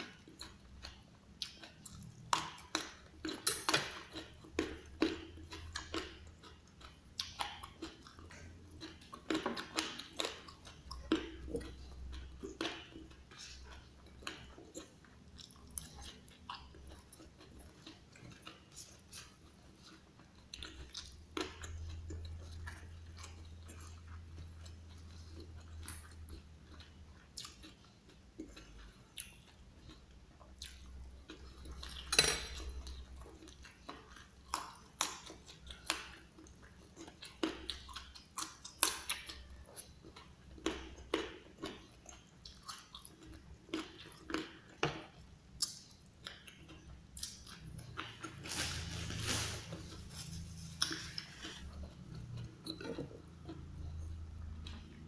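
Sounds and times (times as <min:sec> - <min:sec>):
chewing and biting food: 0:00.0 - 0:55.0
wet mouth sounds and crunches: 0:45.5 - 0:55.0.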